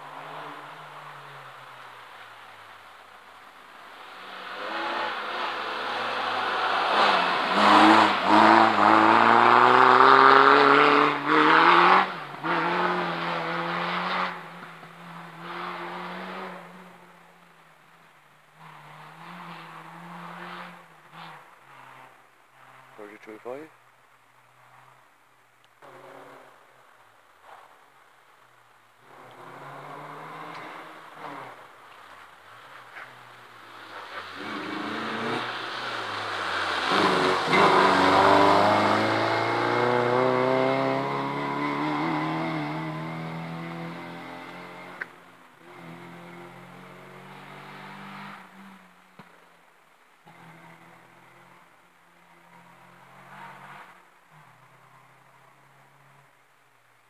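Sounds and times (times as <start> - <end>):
rally car engine revving past: 4.0 - 17.0, 29.1 - 31.7, 33.7 - 49.3.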